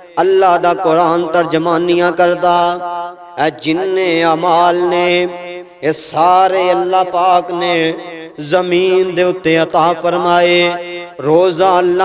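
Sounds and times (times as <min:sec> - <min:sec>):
man preaching in chant-like voice: 0:00.0 - 0:12.0.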